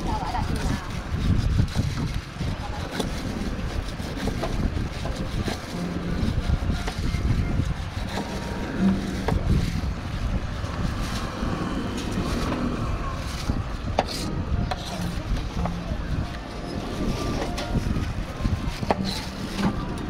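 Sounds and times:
wind on microphone: 0.0 - 20.0.

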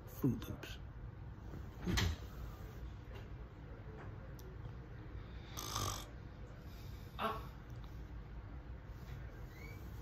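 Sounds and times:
man snoring: 5.5 - 6.1.

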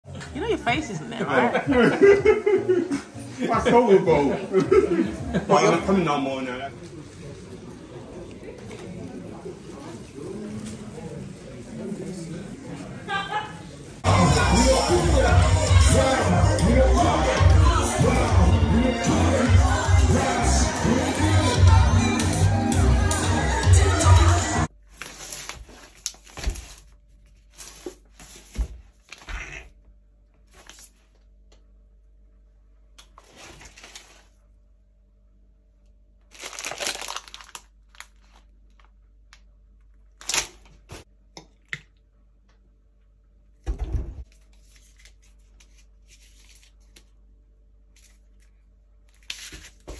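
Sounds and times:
muffled murmur of low voices: 0.1 - 18.9
plastic packet crinkling: 36.3 - 39.0, 40.0 - 40.8.

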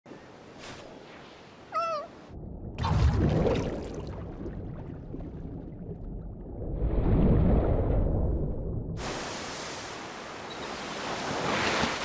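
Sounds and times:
cat-like meow: 1.7 - 2.1.

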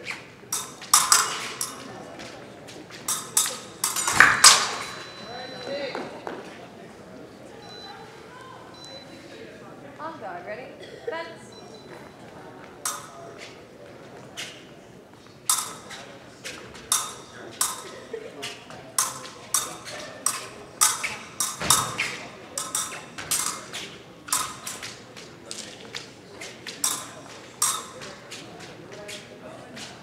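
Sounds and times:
fencing blades clicking: 0.5 - 5.2, 12.8 - 13.2, 15.5 - 28.6.

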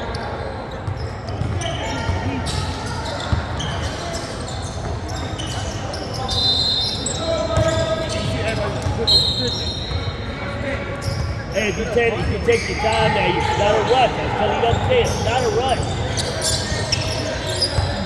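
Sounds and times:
sneakers squeaking: 0.0 - 18.0
voices in echoing hall: 0.0 - 18.0
referee's whistle: 5.4 - 8.3, 9.0 - 10.1.

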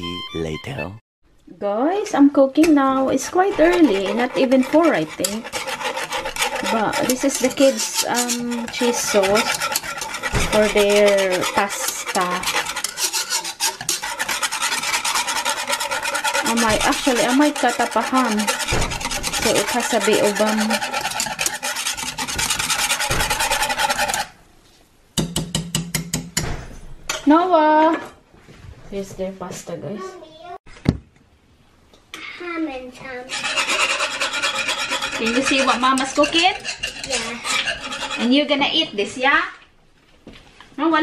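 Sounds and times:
wire whisk scraping a saucepan: 2.6 - 24.4, 33.3 - 39.1.

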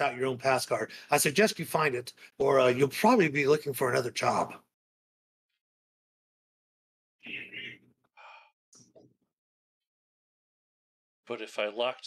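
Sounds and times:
man gasping: 8.2 - 8.5.

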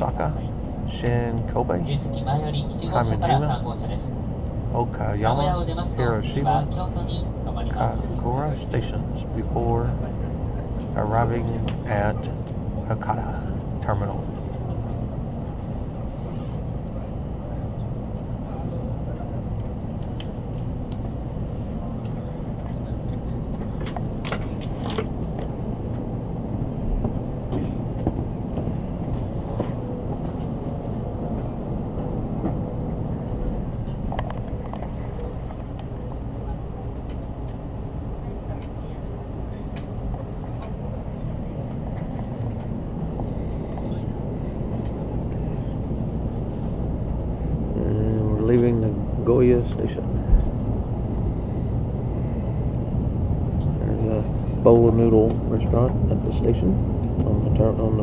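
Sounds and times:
train carriage low rumble: 0.0 - 58.0.

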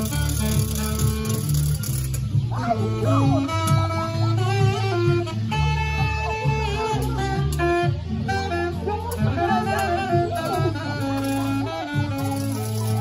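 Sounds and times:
backing music with bass line: 0.0 - 13.0
saxophone melody: 0.0 - 13.0.

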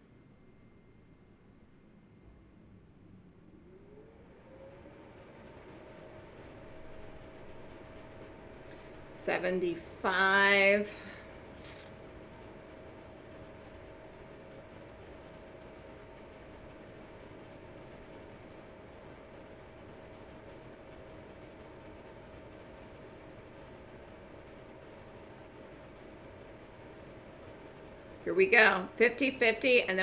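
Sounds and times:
faint constant tone: 0.0 - 30.0
low hiss and hum: 0.0 - 30.0.

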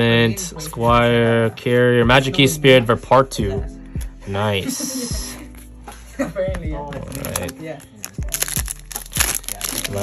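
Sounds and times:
background music: 0.0 - 10.0
foil wrapper crinkling: 7.0 - 10.0.

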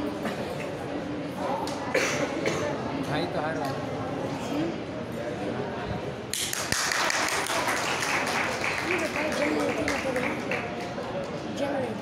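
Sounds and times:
crowd clapping: 6.3 - 11.5.

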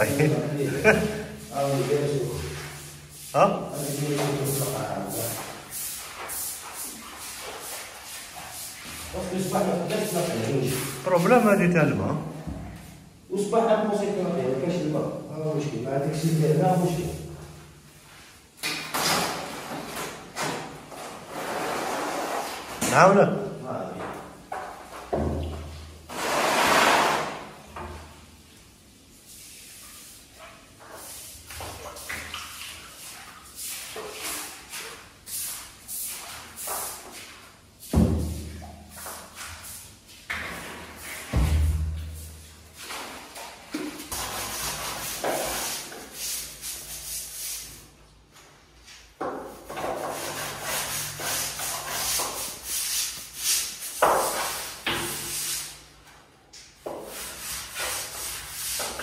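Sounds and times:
brush scrubbing a wall: 0.0 - 11.8, 19.1 - 22.8, 24.0 - 59.0
broom sweeping tiled floor: 0.0 - 13.1, 16.0 - 23.1, 24.0 - 59.0.

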